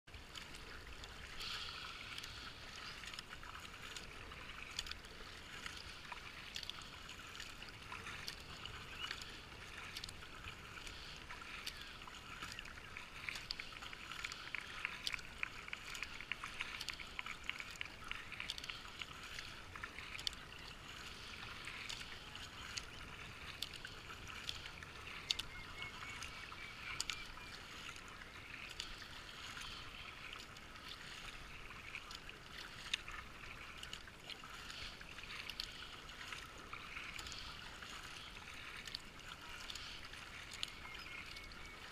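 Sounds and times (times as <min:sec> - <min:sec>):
river water rippling and lapping: 0:00.0 - 0:41.9
paddle strokes splashing: 0:00.1 - 0:41.9.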